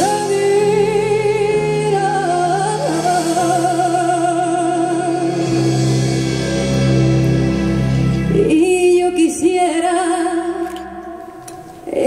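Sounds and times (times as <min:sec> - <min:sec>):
woman singing with vibrato: 0:00.0 - 0:05.8, 0:08.3 - 0:12.0
piano accompaniment: 0:00.0 - 0:09.5.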